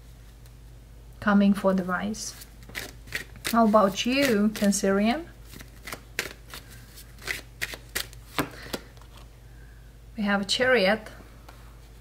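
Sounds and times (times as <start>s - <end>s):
cards being shuffled: 2.4s - 4.8s, 5.4s - 9.3s.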